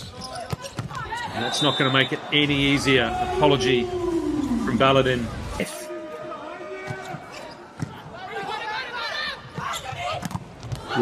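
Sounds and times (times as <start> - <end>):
voices in arena: 0.0 - 11.0.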